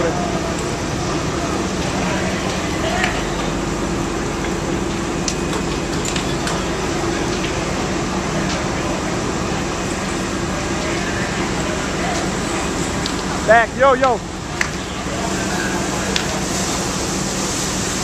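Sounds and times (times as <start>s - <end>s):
indistinct voices: 0.0s - 17.2s
dense wash of noise: 0.0s - 18.0s
fire engine engine hum: 0.0s - 18.0s.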